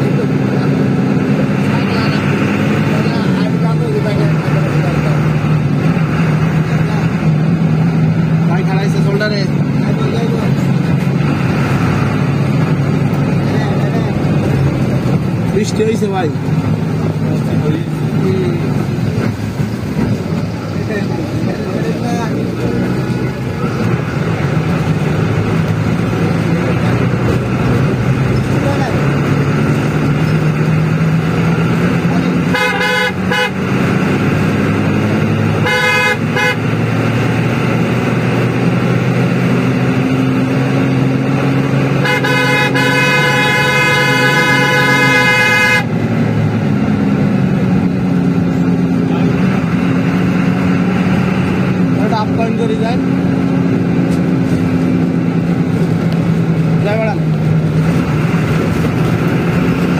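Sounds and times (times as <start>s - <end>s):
bus engine running: 0.0s - 59.9s
road noise: 0.0s - 59.9s
bus horn blasts: 32.3s - 33.7s, 35.6s - 37.0s, 41.9s - 46.0s.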